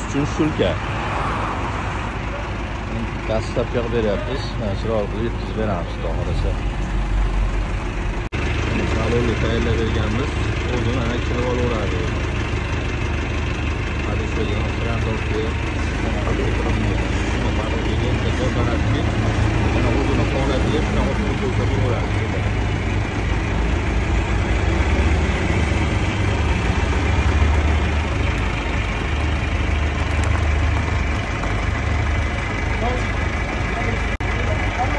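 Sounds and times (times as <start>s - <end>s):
forklift engine running: 0.0s - 34.9s.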